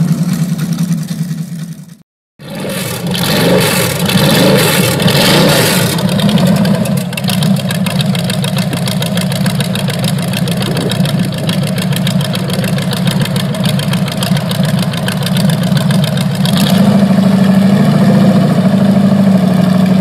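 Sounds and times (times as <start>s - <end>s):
engine idling: 0.0s - 20.0s.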